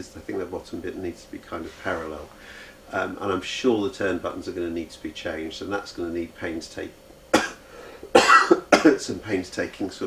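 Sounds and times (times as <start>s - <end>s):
man coughing: 7.3s - 9.0s.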